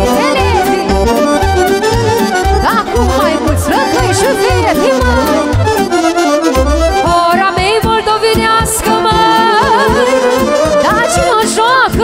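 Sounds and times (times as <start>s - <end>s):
steady drum beat: 0.0s - 11.1s
live folk dance band: 0.0s - 12.0s.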